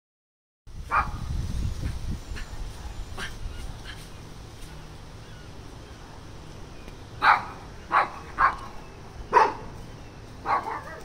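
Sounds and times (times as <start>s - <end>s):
dog barking: 0.9s - 1.2s, 7.2s - 8.7s, 9.3s - 9.7s, 10.4s - 11.0s.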